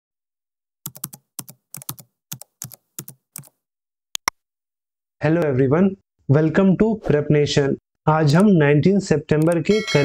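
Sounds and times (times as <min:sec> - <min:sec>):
computer keyboard typing: 0:00.8 - 0:03.6, 0:09.4 - 0:09.6.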